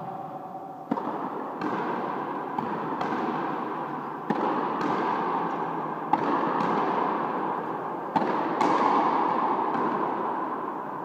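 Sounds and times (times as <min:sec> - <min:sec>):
racket striking rubber ball: 0:00.0 - 0:07.4, 0:08.1 - 0:10.4.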